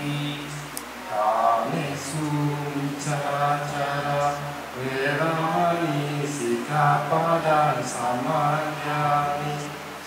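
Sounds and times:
voices chanting: 0.0s - 10.0s.

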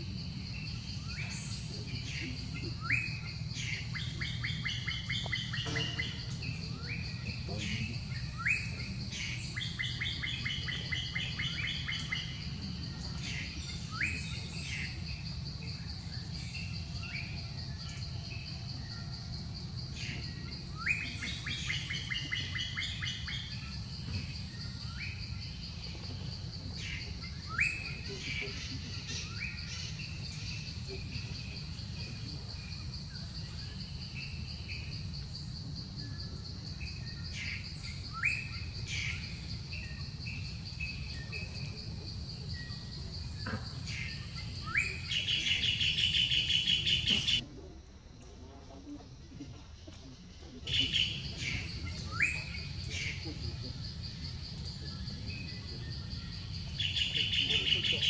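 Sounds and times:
high insect drone: 0.0s - 58.0s.

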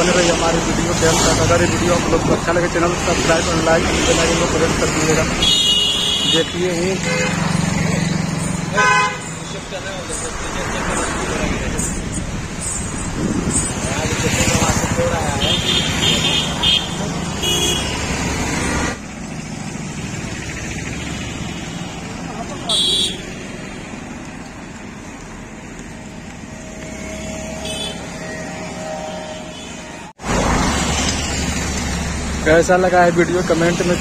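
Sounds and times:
roadside traffic noise: 0.0s - 34.0s.

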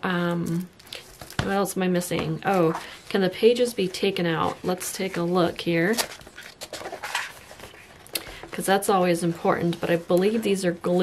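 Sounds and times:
soft paper crackles: 0.5s - 11.0s
book pages rustling: 2.1s - 10.6s.

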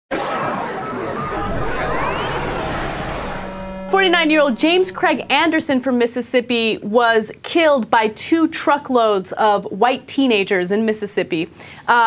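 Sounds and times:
crowd chatter: 0.2s - 2.7s
rising sweep: 1.1s - 6.2s.

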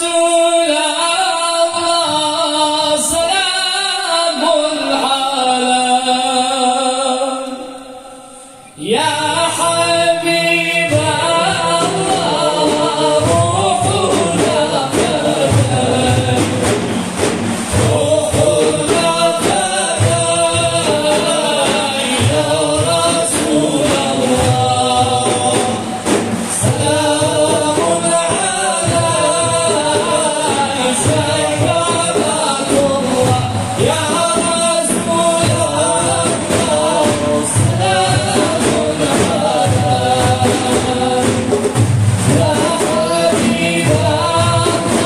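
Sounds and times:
frame drums: 0.0s - 7.6s, 8.3s - 45.0s
chorus singing devotional chant: 0.0s - 45.0s.

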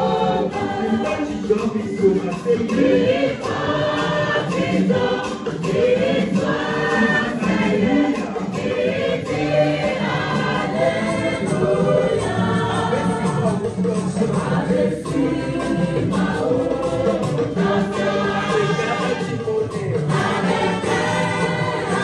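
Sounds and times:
women's choir singing a hymn: 0.0s - 19.3s, 20.1s - 22.0s.

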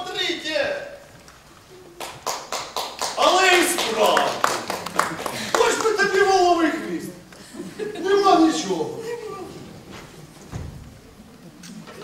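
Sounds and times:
loud voices from stage: 3.2s - 12.0s.

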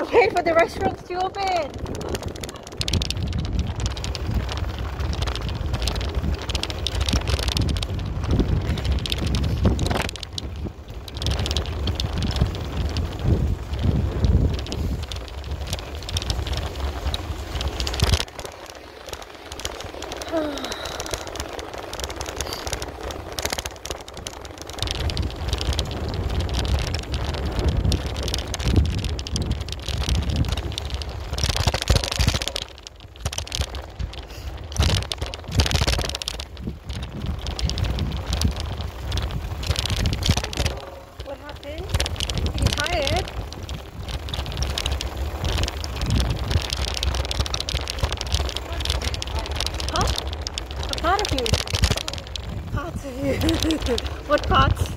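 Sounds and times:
wind buffeting microphone: 0.0s - 54.9s.

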